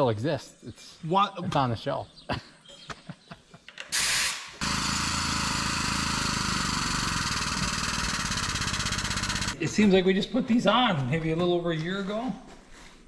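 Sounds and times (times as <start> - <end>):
air hiss: 3.9 - 4.6
hydraulic pump chattering: 4.6 - 9.6.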